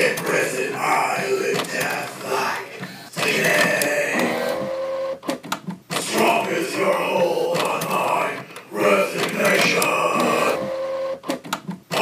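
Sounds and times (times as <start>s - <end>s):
printer motor whine: 3.2s - 5.3s, 10.0s - 11.3s
printer sharp clicks: 9.2s - 12.0s.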